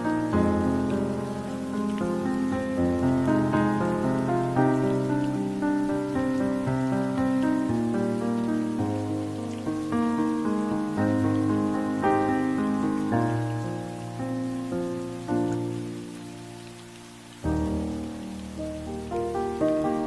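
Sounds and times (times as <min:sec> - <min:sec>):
rain hiss: 0:00.0 - 0:20.0
slow gentle chord music: 0:00.0 - 0:20.0.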